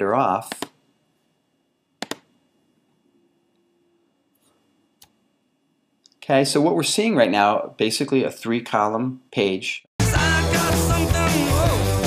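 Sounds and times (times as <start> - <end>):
computer mouse clicks: 2.0 - 2.3.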